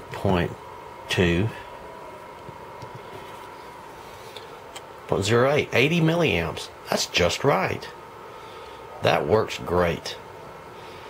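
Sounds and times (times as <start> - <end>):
low steady background hum: 0.0 - 11.0.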